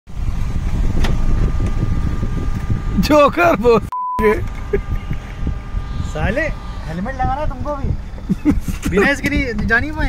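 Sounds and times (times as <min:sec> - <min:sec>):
street traffic: 0:00.1 - 0:10.0
motor scooter running: 0:04.4 - 0:10.0.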